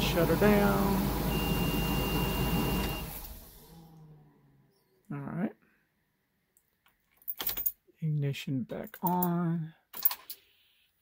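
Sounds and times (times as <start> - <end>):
engine running with whine: 0.0 - 4.0.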